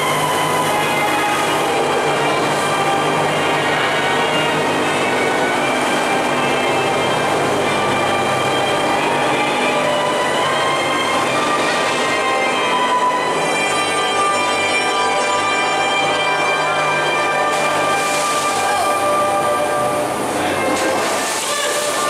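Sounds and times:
sustained musical tones: 0.0s - 22.0s.

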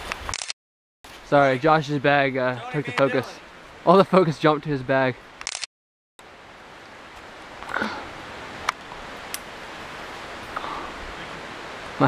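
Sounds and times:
outdoor background hiss: 1.1s - 5.6s, 6.2s - 12.0s.

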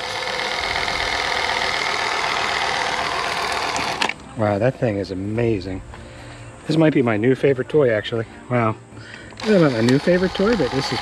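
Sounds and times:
caulk gun motor humming: 0.0s - 4.2s, 9.4s - 11.0s.

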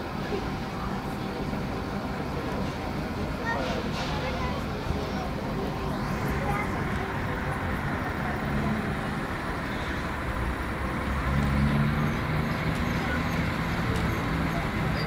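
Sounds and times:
heavy truck engine running: 0.0s - 15.0s.

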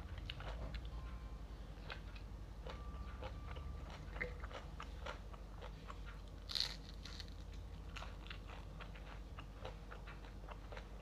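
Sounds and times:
person chewing crunchy food: 0.0s - 0.9s, 1.8s - 11.0s.

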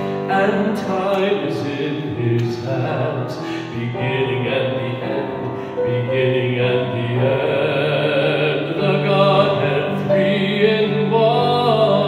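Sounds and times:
keyboard accompaniment: 0.0s - 12.0s
man singing into a microphone: 0.0s - 12.0s.

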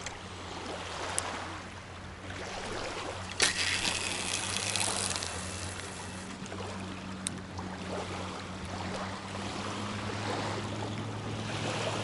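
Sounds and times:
small waves lapping on shore: 0.0s - 12.0s
fishing line hissing off spool: 3.2s - 6.6s
fishing reel click: 3.3s - 6.6s.

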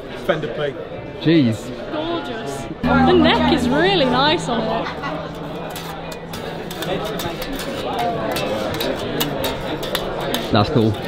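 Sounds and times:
crowd chatter: 0.0s - 11.0s
electric bass playing: 2.8s - 8.2s.

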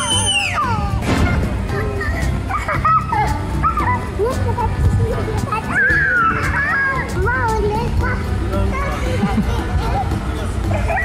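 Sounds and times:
children squealing and shrieking: 0.0s - 1.0s, 1.7s - 4.4s, 5.1s - 10.1s, 10.7s - 11.0s
background music with bass: 0.0s - 11.0s.

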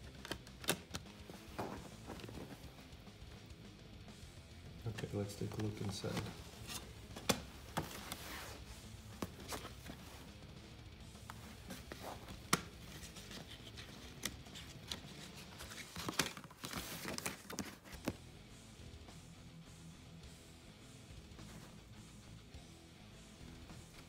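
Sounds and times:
quiet background music: 0.0s - 24.0s
plastic case clicks: 0.1s - 2.4s, 4.9s - 8.0s
paper rustling: 4.9s - 10.3s, 11.3s - 18.1s.

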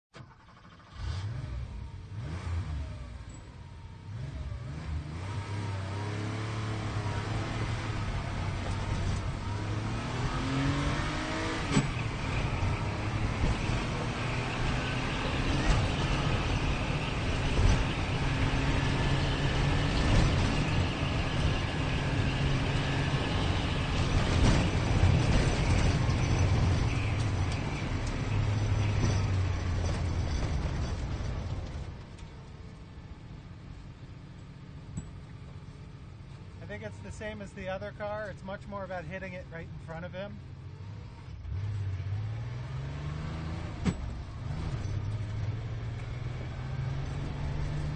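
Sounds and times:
sports car engine accelerating: 0.7s - 30.6s, 39.7s - 47.9s.

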